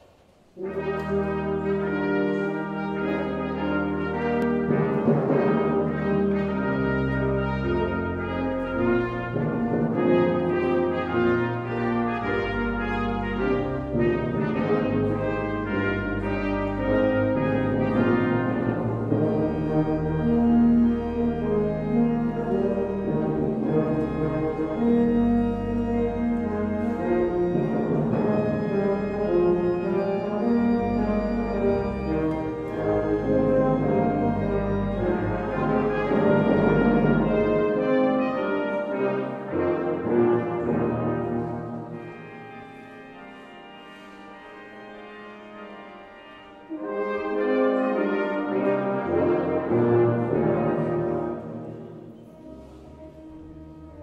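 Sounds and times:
brass quartet playing hymn-like chords: 0.5s - 54.0s.

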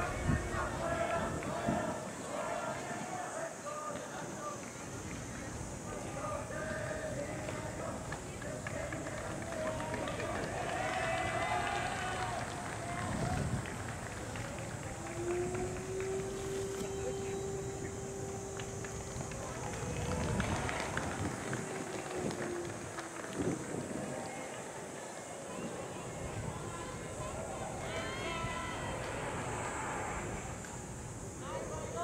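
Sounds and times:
indistinct voices talking: 0.0s - 32.0s
outdoor background hiss: 0.0s - 32.0s
steady low tone: 12.5s - 23.3s.

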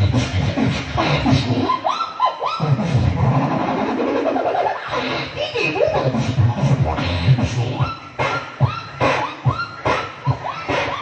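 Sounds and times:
person beatboxing buzzing vocal: 4.8s - 11.0s.

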